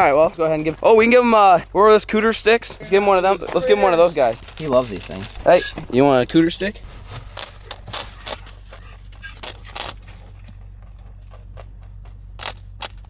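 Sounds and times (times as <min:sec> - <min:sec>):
rabbit crunching treat stick: 0:04.2 - 0:05.6, 0:06.6 - 0:10.3, 0:10.9 - 0:13.0.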